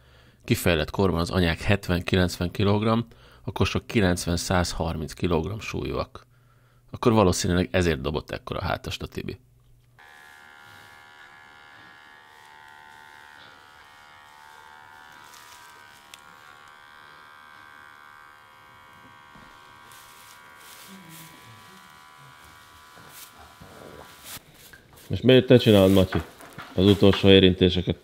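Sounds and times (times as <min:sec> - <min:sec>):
electric clippers buzzing: 0:10.0 - 0:24.5, 0:25.7 - 0:27.3.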